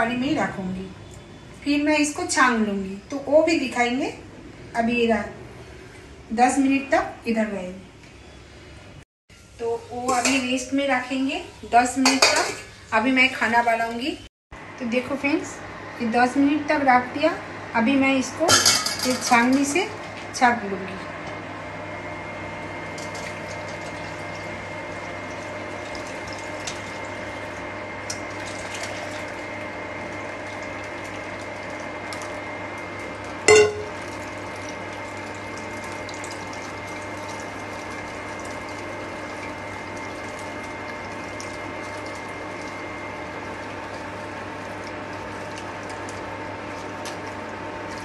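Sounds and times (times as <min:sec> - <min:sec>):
electrical hum of cooktop: 0:00.0 - 0:48.0
wet squishing of coconut: 0:43.4 - 0:48.0.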